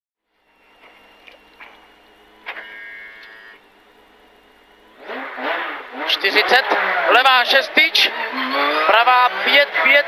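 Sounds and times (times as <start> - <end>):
car engine idling: 0.2 - 10.0
click: 3.2 - 3.4
engine revving hard: 4.8 - 10.0.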